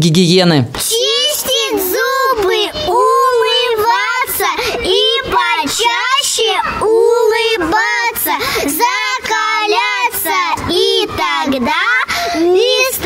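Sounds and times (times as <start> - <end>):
girls singing into a microphone: 0.8 - 13.0.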